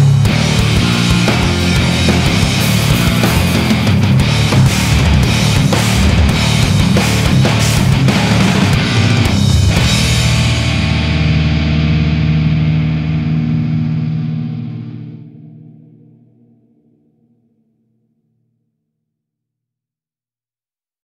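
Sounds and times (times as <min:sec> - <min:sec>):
distorted electric guitar chord: 0:00.0 - 0:16.8.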